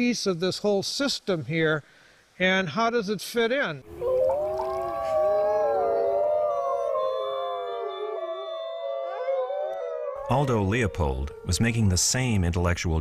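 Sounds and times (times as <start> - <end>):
wolves howling in chorus: 3.9 - 12.4.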